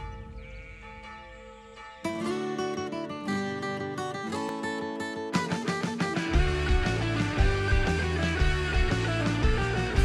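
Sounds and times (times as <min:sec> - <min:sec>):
church bells ringing: 0:00.0 - 0:03.0.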